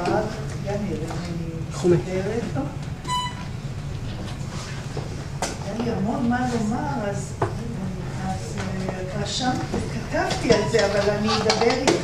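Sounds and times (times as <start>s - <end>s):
steady low hum: 0.0s - 12.0s
short high electronic beep: 3.1s - 3.5s.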